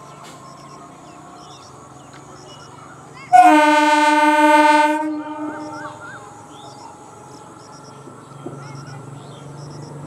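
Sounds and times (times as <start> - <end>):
train horn blast: 3.3 - 6.1.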